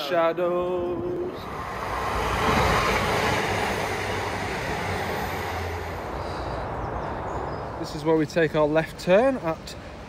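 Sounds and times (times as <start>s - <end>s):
passenger train passing: 0.0s - 8.9s.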